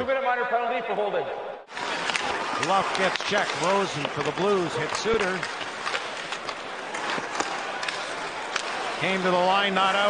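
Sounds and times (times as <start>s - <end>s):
hockey sticks and puck clacking: 1.7s - 10.0s
skates scraping ice: 1.7s - 10.0s.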